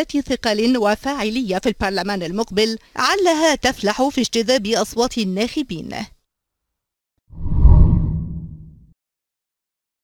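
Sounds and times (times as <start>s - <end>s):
deep whoosh: 7.3s - 8.8s.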